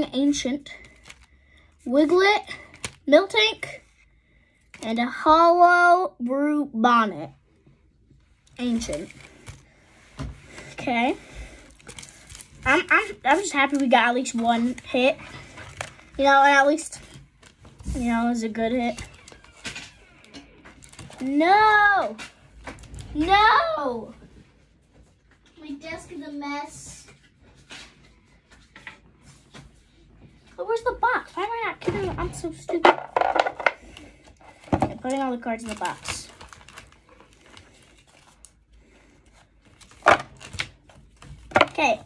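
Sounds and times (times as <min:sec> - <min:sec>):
cards rustling: 0:00.8 - 0:03.2, 0:08.5 - 0:10.8, 0:32.8 - 0:42.0
cards rustling clacks: 0:32.8 - 0:38.6.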